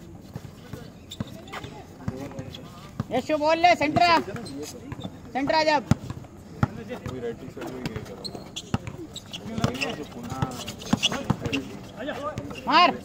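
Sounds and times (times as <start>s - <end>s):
basketball bouncing on concrete: 0.4s - 11.6s
players calling out: 0.6s - 13.0s.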